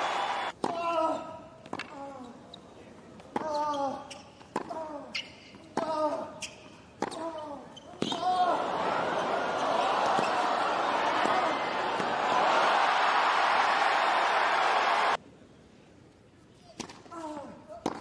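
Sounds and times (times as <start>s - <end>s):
crowd cheering and applauding: 0.0s - 0.5s, 8.7s - 15.2s.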